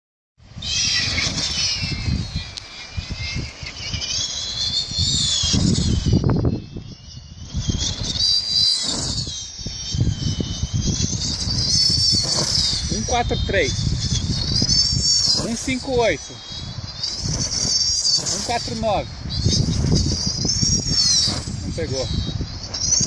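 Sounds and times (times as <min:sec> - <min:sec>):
gusty wind buffeting microphone: 0:00.4 - 0:23.0
high-pitched wavering whistle: 0:00.4 - 0:23.0.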